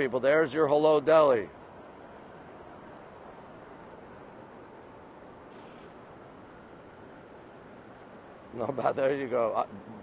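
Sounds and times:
low street hum: 0:00.0 - 0:10.0
soft hiss: 0:00.0 - 0:10.0.

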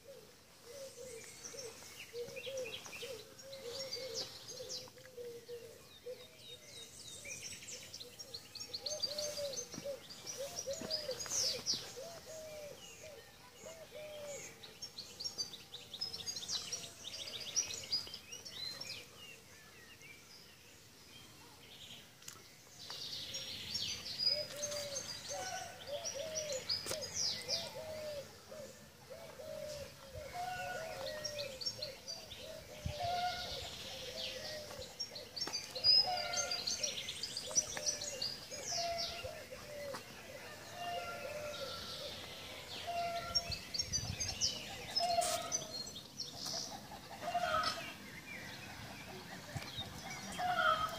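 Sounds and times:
birds chirping and trilling: 0:00.0 - 0:50.9.

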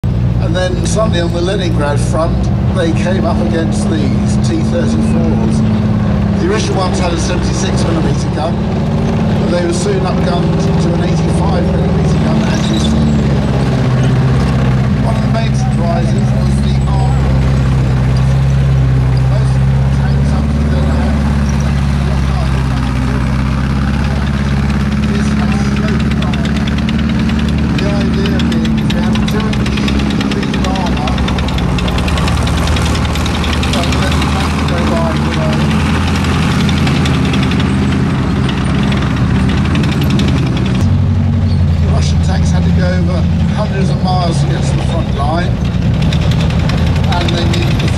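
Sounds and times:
tank diesel engine droning: 0:00.0 - 0:47.9.

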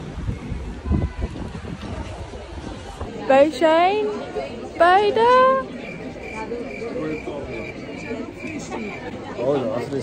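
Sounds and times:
faint background voices: 0:00.1 - 0:10.0
cricket-like chirping: 0:05.8 - 0:07.8.

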